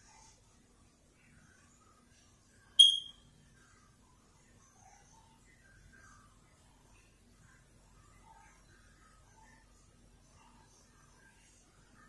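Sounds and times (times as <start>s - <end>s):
short high-pitched chirp: 2.8s - 3.2s.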